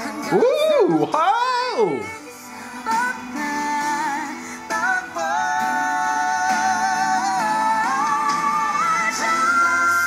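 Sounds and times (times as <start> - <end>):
musical accompaniment: 0.0 - 10.0
woman singing pop ballad: 0.0 - 10.0.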